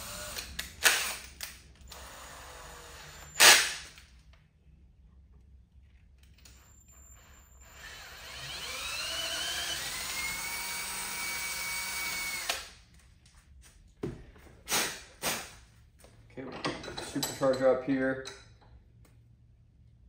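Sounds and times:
cordless drill drilling metal: 0.0s - 1.2s, 1.9s - 3.8s, 7.2s - 12.8s.

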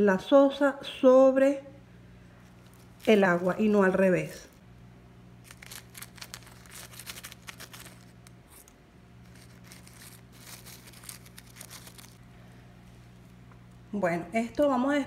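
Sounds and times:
plastic bag crinkling: 2.4s - 4.6s, 5.4s - 12.2s.

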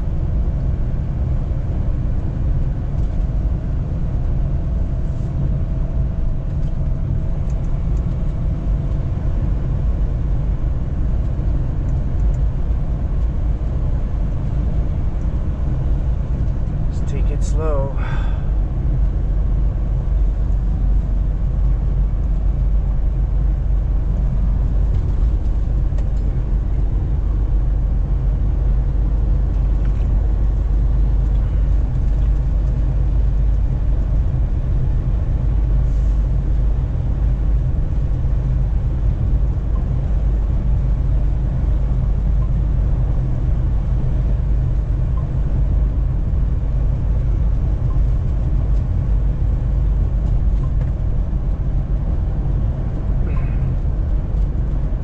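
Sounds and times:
truck engine and tyres rumbling: 0.0s - 55.0s.

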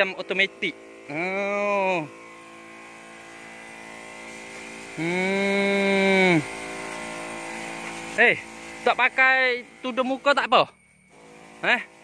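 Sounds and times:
electric pump humming: 0.0s - 12.0s
faint hiss of spray: 4.1s - 10.5s.

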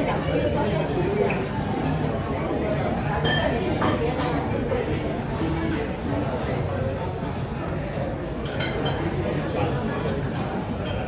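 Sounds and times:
tableware clinking: 3.2s - 4.3s, 8.4s - 9.1s, 10.8s - 11.0s.

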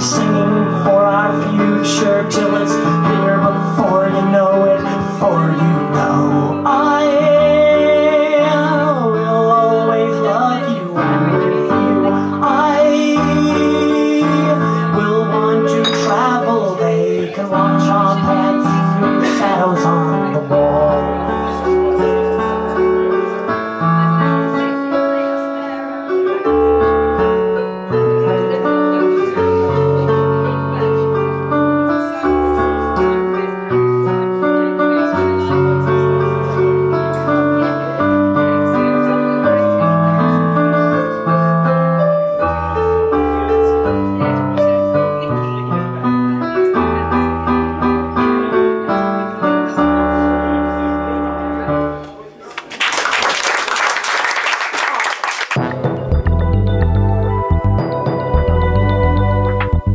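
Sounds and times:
electronic keyboard piano playing: 0.0s - 52.3s, 55.6s - 59.9s.

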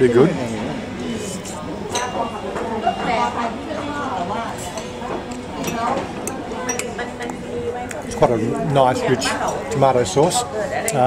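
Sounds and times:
diners chatter: 0.0s - 11.0s.

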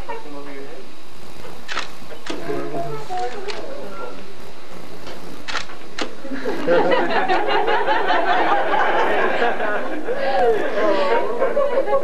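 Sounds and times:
overlapping chatter of voices: 2.1s - 12.0s.

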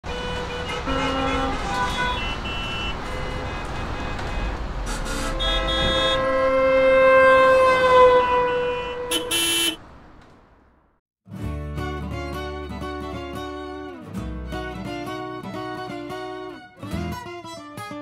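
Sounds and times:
car horn toots and blasts: 0.0s - 9.9s.

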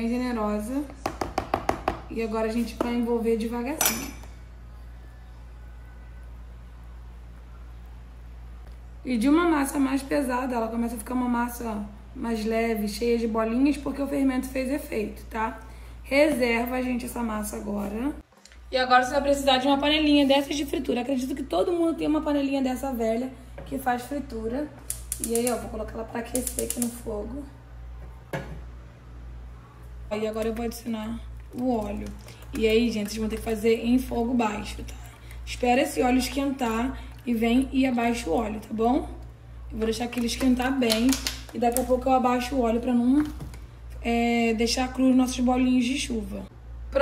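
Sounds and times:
low steady hum: 0.0s - 47.0s
saucepan knocking on hob: 1.0s - 2.1s.

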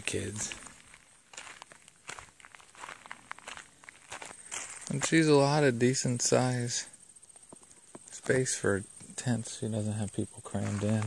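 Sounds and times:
footsteps on grass: 0.0s - 5.6s, 10.4s - 11.0s.

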